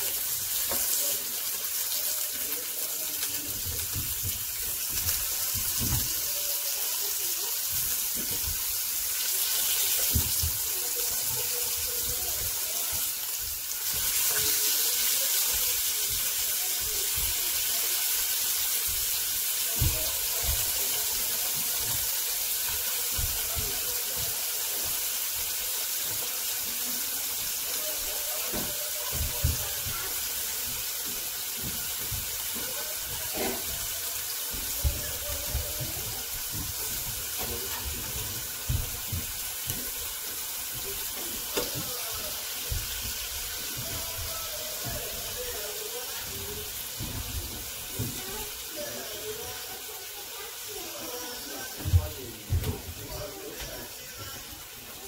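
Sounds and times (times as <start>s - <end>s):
chicken sizzling on grill pan: 0.0s - 55.0s.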